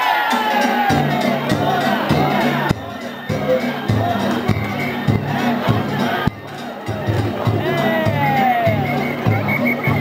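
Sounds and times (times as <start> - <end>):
crowd shouting and chanting: 0.0 - 10.0
festival drum beating: 0.0 - 10.0.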